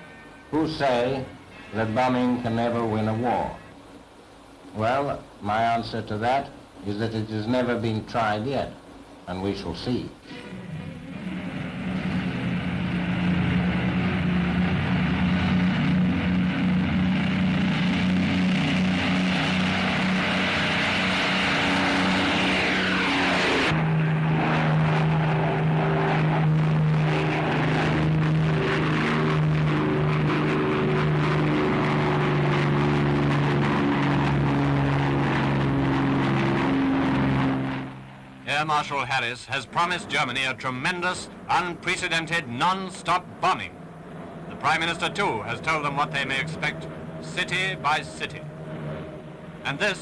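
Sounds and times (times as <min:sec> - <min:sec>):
falling whine: 0:00.0 - 0:50.0
piston engines droning: 0:10.2 - 0:50.0.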